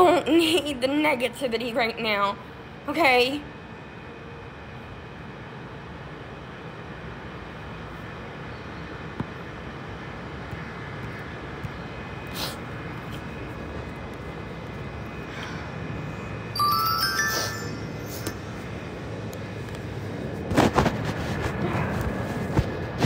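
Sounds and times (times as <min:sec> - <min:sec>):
steady background hum: 0:00.0 - 0:23.0
rising stepped chime: 0:16.6 - 0:18.4.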